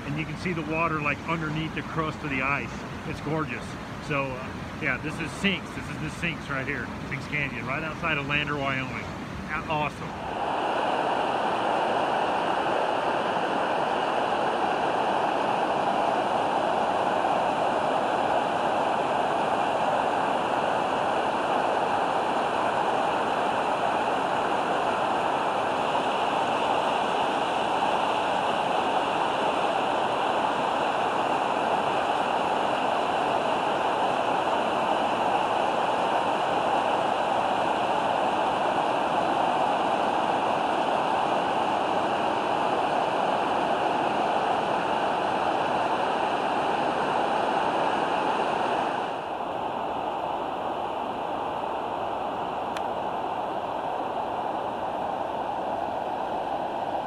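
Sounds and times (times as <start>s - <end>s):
river water rushing: 0.0s - 57.0s.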